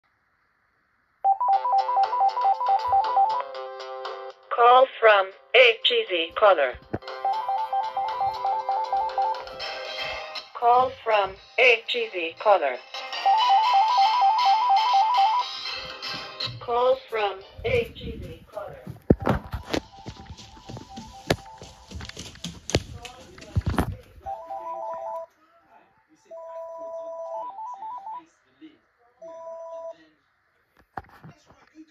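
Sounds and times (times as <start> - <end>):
cordless telephone ringing: 1.3 - 3.5, 7.0 - 9.4, 24.3 - 25.3, 26.3 - 28.2.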